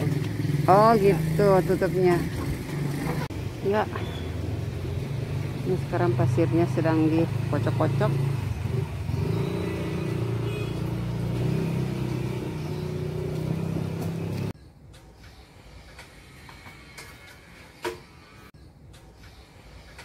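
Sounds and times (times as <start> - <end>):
engine humming: 0.0 - 15.1.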